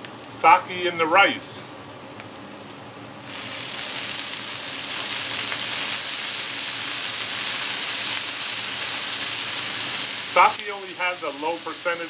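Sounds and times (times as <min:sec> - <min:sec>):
loud sizzle on griddle: 0:00.0 - 0:12.0.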